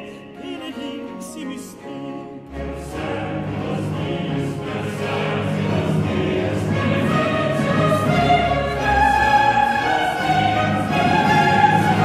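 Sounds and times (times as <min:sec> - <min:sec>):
baroque orchestra: 0:00.0 - 0:12.0
choir singing: 0:00.0 - 0:12.0.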